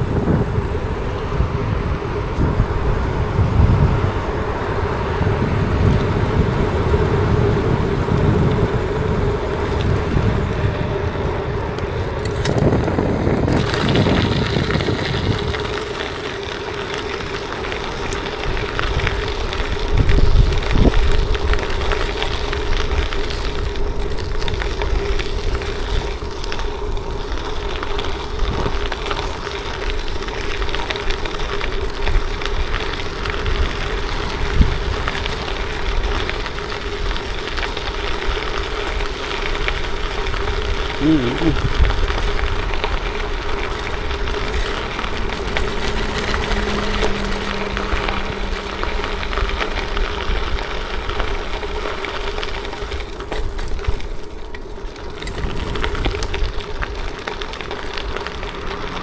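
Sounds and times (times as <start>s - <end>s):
wind on microphone: 0.0s - 29.4s, 31.2s - 54.2s
tyres rolling over gravel: 0.0s - 59.0s.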